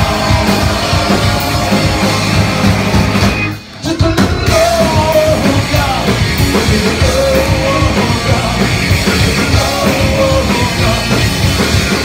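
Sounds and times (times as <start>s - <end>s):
shouted vocals: 0.0s - 2.6s
punk rock band playing live: 0.0s - 12.0s.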